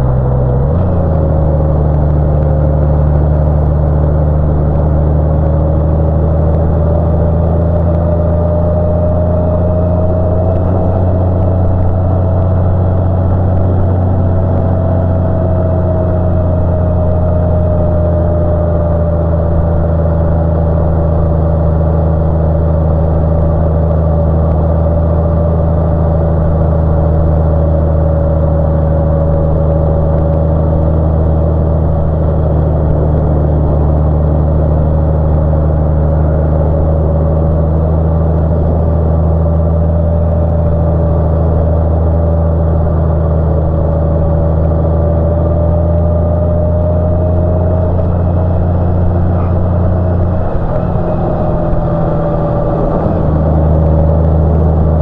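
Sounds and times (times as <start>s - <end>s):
faint whine: 0.0s - 55.0s
motorcycle engine drone: 0.0s - 55.0s
wind and road noise: 0.0s - 55.0s.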